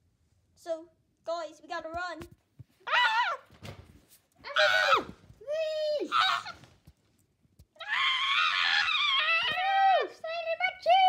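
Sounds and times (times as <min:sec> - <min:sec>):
child screaming playfully: 0:04.5 - 0:06.6, 0:07.8 - 0:10.2.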